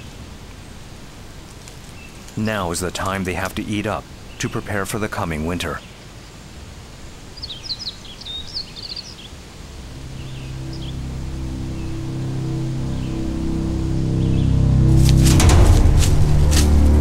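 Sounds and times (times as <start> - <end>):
bird chirping: 1.9 - 6.4, 7.3 - 14.9
low music drone: 9.6 - 17.0.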